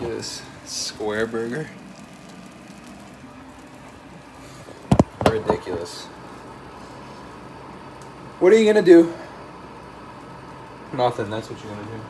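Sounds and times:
faint kitchen hiss and hum: 0.0 - 12.0.

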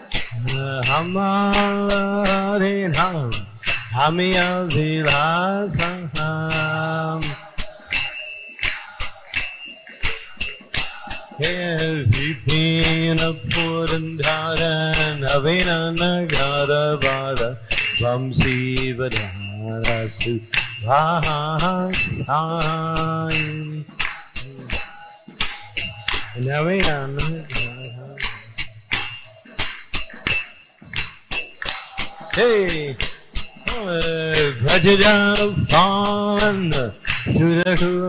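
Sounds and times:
hand cymbals clashing: 0.0 - 38.0
man singing devotional song: 0.0 - 38.0.

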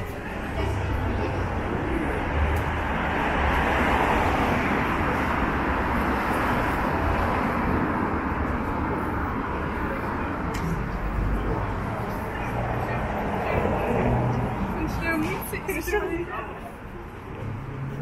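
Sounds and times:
city street traffic: 0.0 - 18.0
vehicle passing: 0.3 - 18.0.

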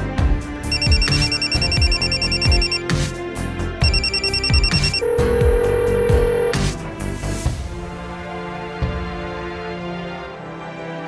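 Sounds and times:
background music with steady beat: 0.0 - 11.0
electronic telephone ring: 0.7 - 2.9, 3.8 - 6.6.

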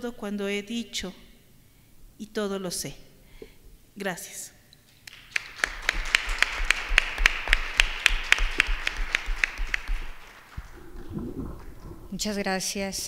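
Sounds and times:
audience applauding: 5.1 - 11.6.

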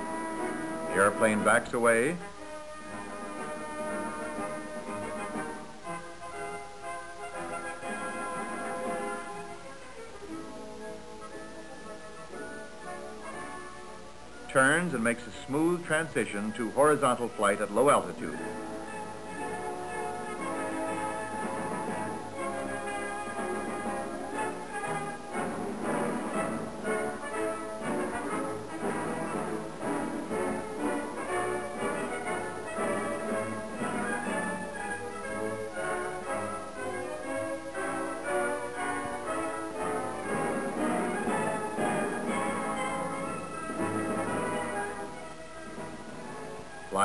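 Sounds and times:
orchestral music with brass: 0.0 - 47.0.

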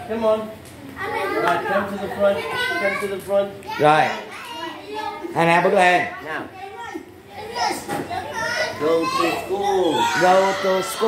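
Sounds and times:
young children chattering: 0.1 - 11.0
man speaking: 8.8 - 11.0.

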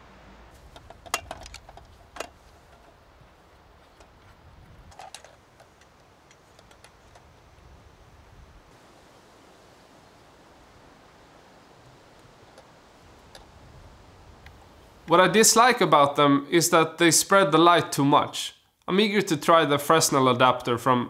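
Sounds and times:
steady hiss: 0.0 - 20.4
light rustling: 0.5 - 7.4.

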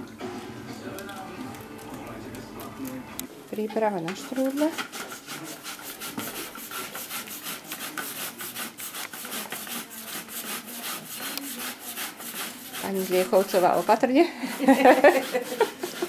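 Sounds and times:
apples grated on hand grater: 3.8 - 16.0.

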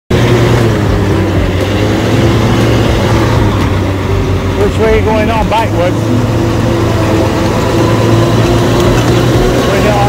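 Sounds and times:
shredder engine droning: 0.1 - 10.0.

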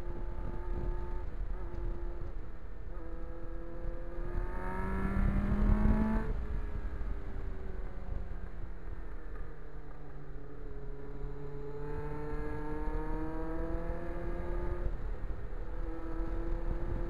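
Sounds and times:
wind rush on microphone: 0.0 - 2.6, 4.3 - 8.8, 13.6 - 17.0
motorcycle engine accelerating: 0.0 - 9.0, 10.3 - 17.0.

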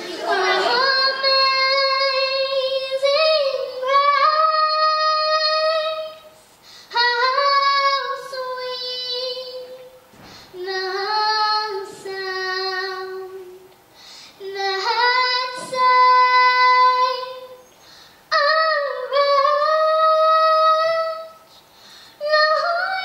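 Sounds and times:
girl singing solo: 0.0 - 9.9.

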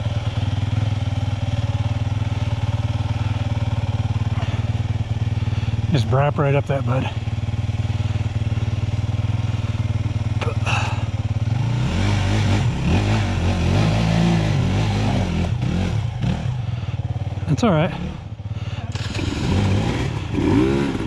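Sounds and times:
dirt bike engines idling: 0.0 - 21.0
engine revving: 10.4 - 21.0.

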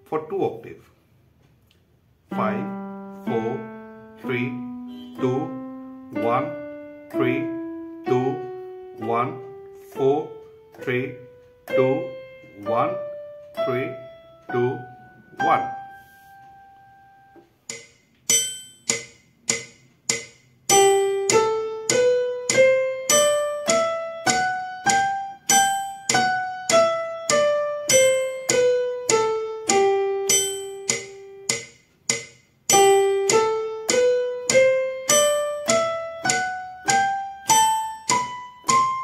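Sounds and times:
piano keyboard playing scale: 2.0 - 39.0.

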